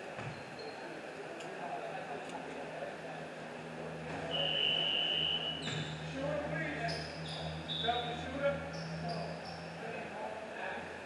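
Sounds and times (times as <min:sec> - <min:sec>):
basketball bouncing: 0:00.2 - 0:00.5
sneaker squeaks on court: 0:00.2 - 0:00.9, 0:05.6 - 0:06.0
steady low hum: 0:01.1 - 0:11.0.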